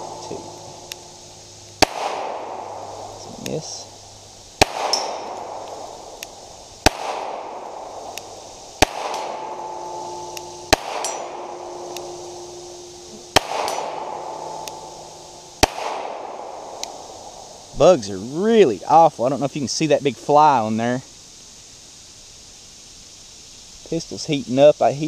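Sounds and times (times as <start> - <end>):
pistol shots with echo: 1.8 - 3.8, 4.6 - 17.4.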